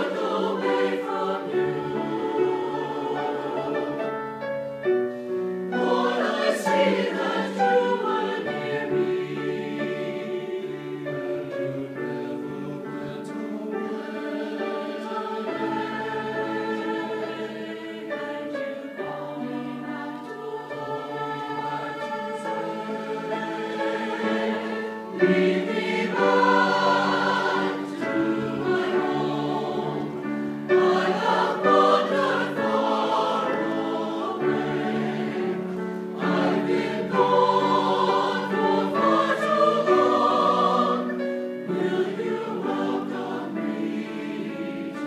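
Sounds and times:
church choir singing: 0:00.0 - 0:45.0.

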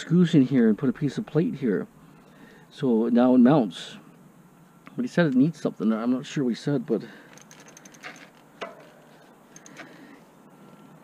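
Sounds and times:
knocks of bike handling: 0:07.4 - 0:09.0.

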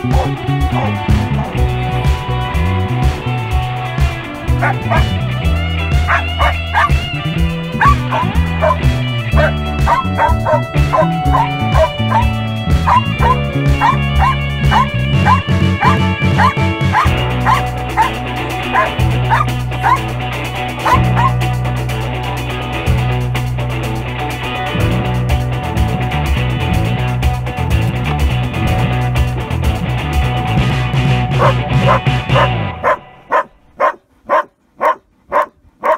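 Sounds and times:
guitar music: 0:00.0 - 0:35.9
dog barking: 0:00.1 - 0:01.5, 0:04.6 - 0:05.1, 0:06.0 - 0:07.0, 0:07.8 - 0:20.1, 0:20.8 - 0:21.4, 0:31.4 - 0:35.9.

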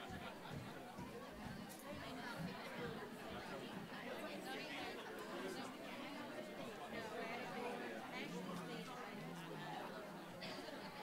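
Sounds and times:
congregation chatting: 0:00.0 - 0:11.0.

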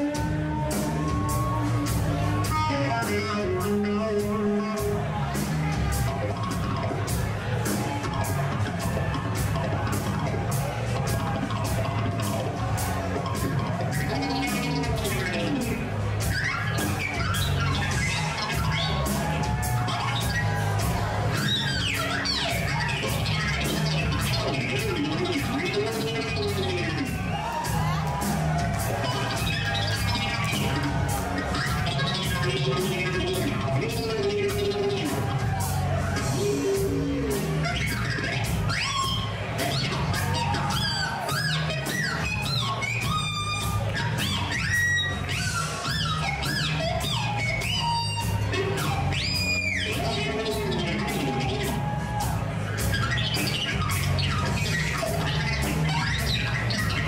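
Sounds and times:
bass line: 0:00.0 - 0:57.0
beat: 0:00.0 - 0:57.0
squealing electric guitar: 0:00.0 - 0:57.0.

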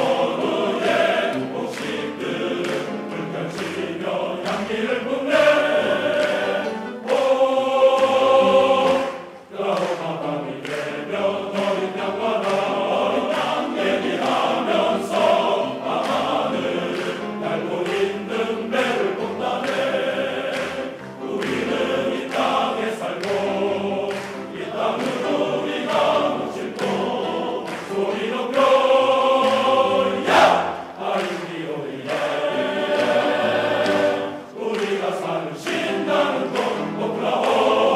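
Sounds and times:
male choir singing: 0:00.0 - 0:37.9.

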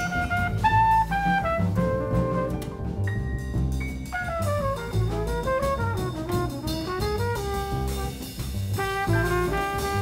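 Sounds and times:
trumpet solo: 0:00.0 - 0:02.7, 0:04.1 - 0:10.0
drums: 0:00.0 - 0:10.0
upright bass: 0:00.0 - 0:10.0.

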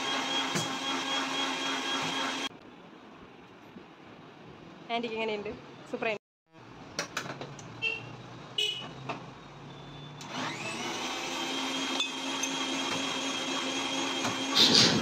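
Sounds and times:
electric blender humming: 0:00.0 - 0:02.5, 0:10.2 - 0:14.6.

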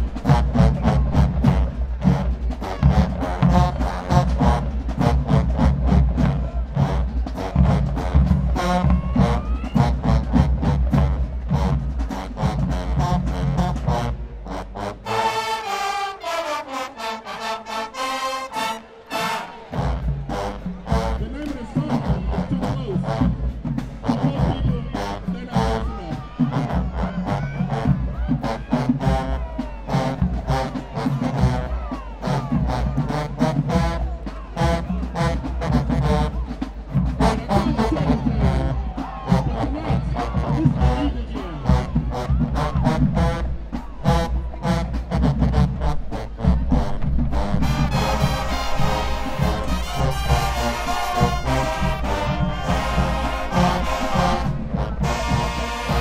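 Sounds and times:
sousaphones and drums bass: 0:00.0 - 0:16.0, 0:17.4 - 0:56.0
marching band playing dance tune: 0:00.0 - 0:56.0.

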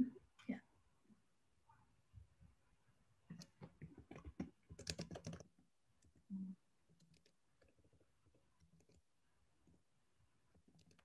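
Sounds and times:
rapid keyboard typing: 0:03.3 - 0:05.6, 0:10.6 - 0:11.0.

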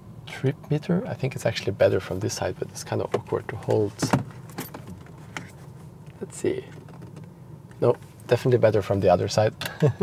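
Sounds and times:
faint steady cabin hiss: 0:00.0 - 0:10.0.

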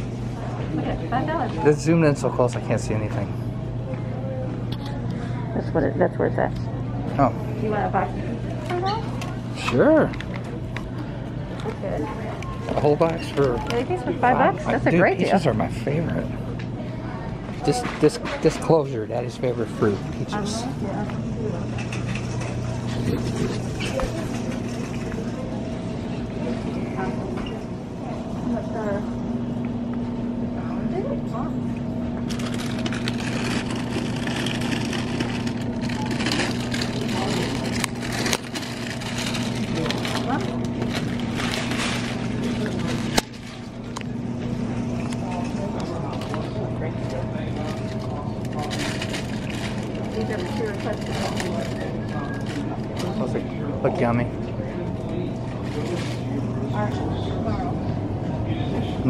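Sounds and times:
faint voices: 0:00.0 - 0:59.0
low hum: 0:00.0 - 0:59.0
plastic bags crinkling: 0:32.3 - 0:44.0, 0:47.1 - 0:53.4.

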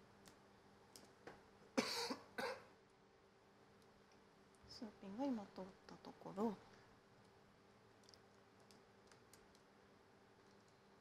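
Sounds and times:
person coughing: 0:01.8 - 0:02.7.

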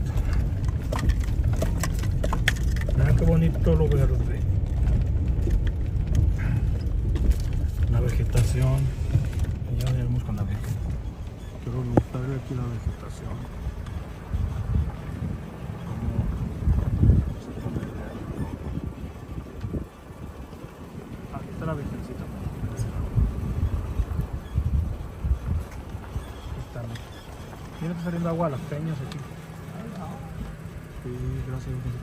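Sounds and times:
car cabin low rumble: 0:00.0 - 0:32.0
vehicle road noise: 0:00.0 - 0:32.0
wind buffeting microphone: 0:00.0 - 0:32.0.

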